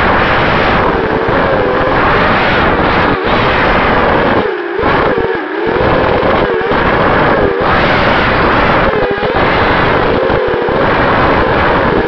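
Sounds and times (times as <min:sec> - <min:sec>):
drone motors whining: 0:00.0 - 0:12.0
wind noise on microphone: 0:00.0 - 0:12.0.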